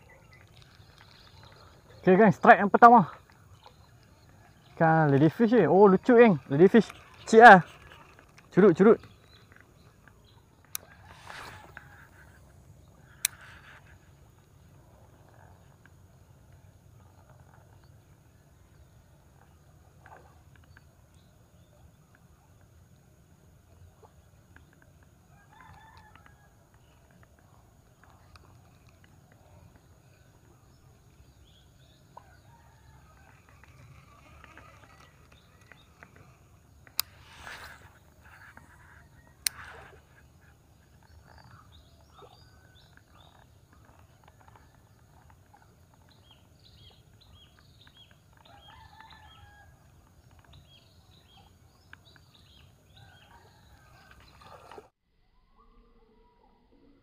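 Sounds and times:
small birds chirping: 0.0s - 54.9s
distant rooster crowing: 25.3s - 26.6s, 48.4s - 50.1s.

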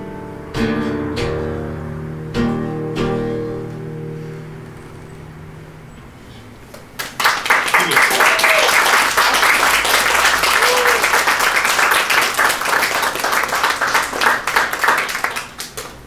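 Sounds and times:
audience applauding: 7.0s - 16.0s
vocal cheers: 7.7s - 9.1s, 10.4s - 11.4s.

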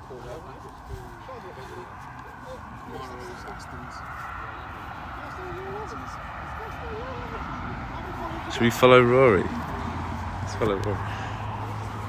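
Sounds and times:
people talking indistinctly: 0.0s - 11.8s
distant drone: 0.0s - 12.0s.

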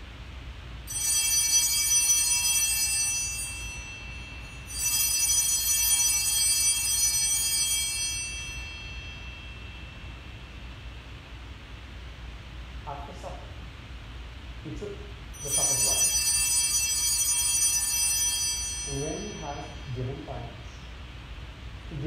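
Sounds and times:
altar bells jingling: 0.9s - 10.3s, 15.3s - 20.7s.

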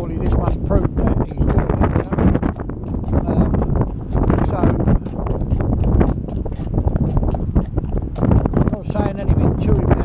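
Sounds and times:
hooves clip-clopping on road: 0.0s - 10.0s
wind rumble on microphone: 0.0s - 10.0s.

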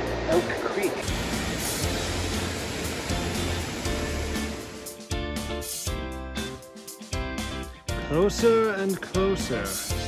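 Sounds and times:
background music: 0.0s - 10.0s
waterfall pouring into pool: 1.0s - 4.8s
creek rushing: 1.0s - 5.0s.

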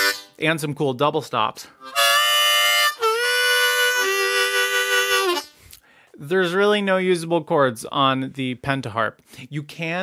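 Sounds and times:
harmonica playing chords: 0.0s - 0.4s, 1.8s - 5.8s.

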